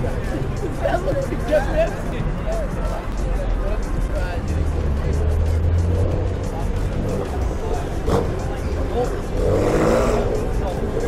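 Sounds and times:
car engine rumble passing: 0:00.0 - 0:11.0
cars driving through intersection: 0:00.0 - 0:11.0
people chattering: 0:00.0 - 0:11.0.

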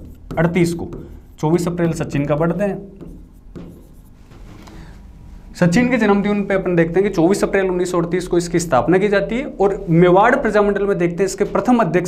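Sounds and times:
pen scratching on a board: 0:00.0 - 0:04.2.

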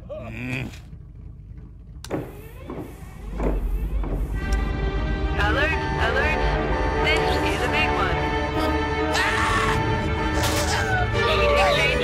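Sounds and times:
low steady hum: 0:00.0 - 0:07.2.

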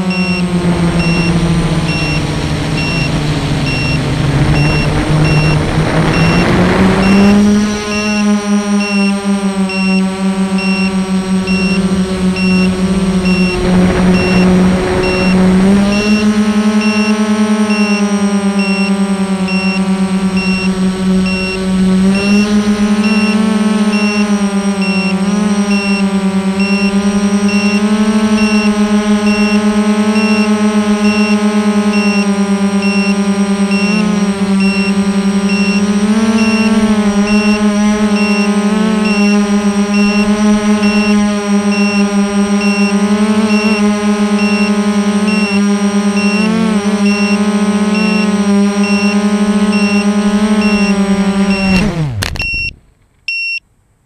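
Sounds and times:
faint high beep: 0:00.0 - 0:45.6, 0:46.2 - 0:47.4, 0:48.0 - 0:51.8, 0:52.4 - 0:53.6
drone motors buzzing: 0:00.0 - 0:52.7
rushing noise: 0:00.4 - 0:08.2, 0:11.5 - 0:16.6.

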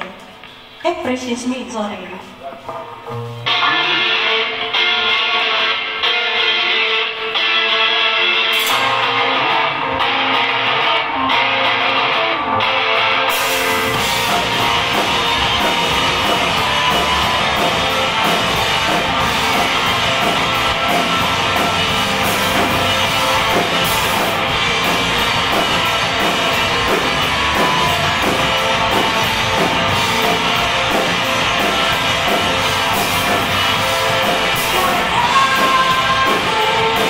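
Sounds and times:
drums: 0:00.0 - 0:37.0
rock band playing live: 0:02.6 - 0:37.0
electric guitars pulsing intro: 0:03.0 - 0:37.0.

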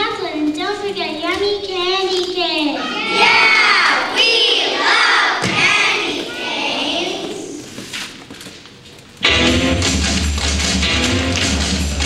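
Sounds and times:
drawn-out child's voice: 0:01.0 - 0:07.7
children shouting and cheering: 0:01.4 - 0:07.7.

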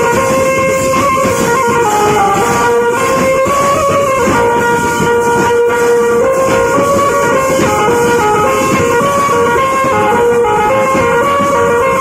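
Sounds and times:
loud drumming: 0:00.0 - 0:12.0
metal percussion: 0:00.0 - 0:12.0
reedy wind instrument melody: 0:00.0 - 0:12.0.

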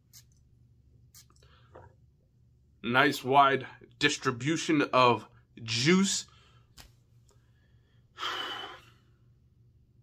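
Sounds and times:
man sniffing: 0:08.1 - 0:09.0.

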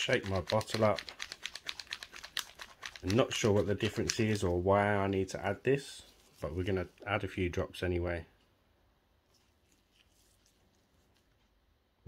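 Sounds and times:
bottle rattling while shaken: 0:00.0 - 0:04.6.

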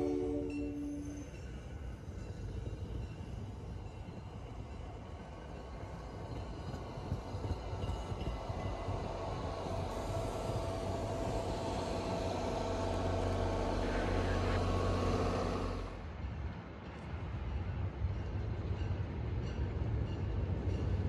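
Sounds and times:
train coaches rumbling past: 0:00.0 - 0:21.0
steady hum: 0:08.7 - 0:16.0.

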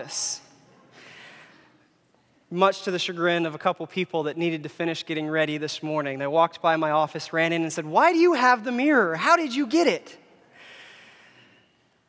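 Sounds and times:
man breathing in: 0:10.5 - 0:11.8.

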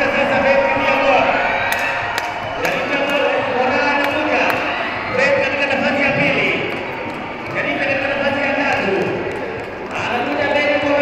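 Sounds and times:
commentator over loudspeakers: 0:00.0 - 0:01.7, 0:02.5 - 0:11.0
crowd noise: 0:00.0 - 0:11.0.

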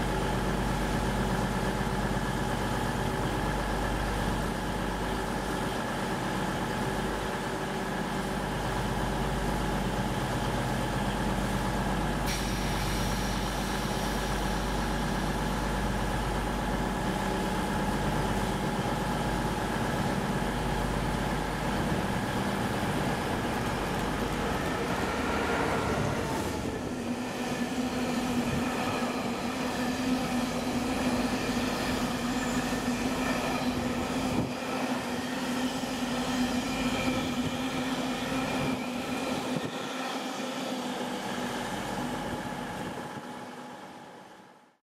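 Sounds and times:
diesel locomotive engine: 0:00.0 - 0:44.6
train wagons rolling past: 0:21.7 - 0:33.8.

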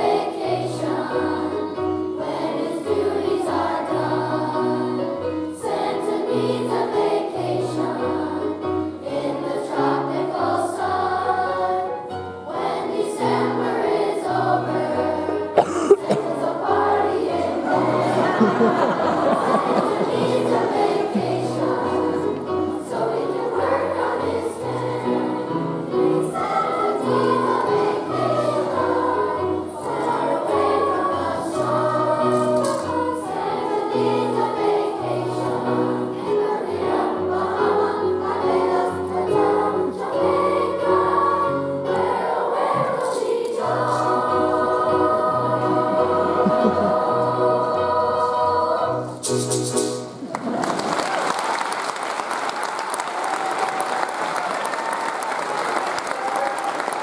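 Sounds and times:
piano accompaniment: 0:00.0 - 0:50.6
children's choir singing: 0:00.0 - 0:57.0.

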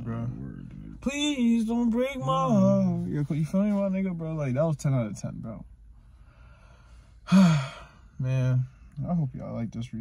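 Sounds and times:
man sighing: 0:07.2 - 0:08.1.

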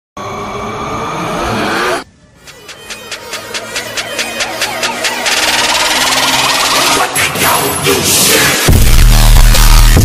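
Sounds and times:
engine revving up: 0:00.2 - 0:02.0.

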